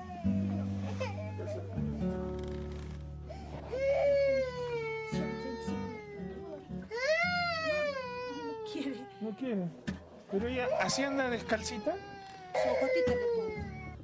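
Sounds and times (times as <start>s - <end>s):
soft guitar music: 0.0s - 14.0s
small child crying: 3.7s - 9.6s, 10.7s - 14.0s.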